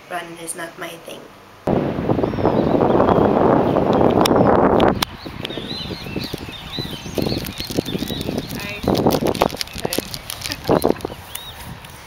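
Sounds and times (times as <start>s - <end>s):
wind buffeting microphone: 1.7s - 12.0s
small birds chirping: 2.2s - 12.0s.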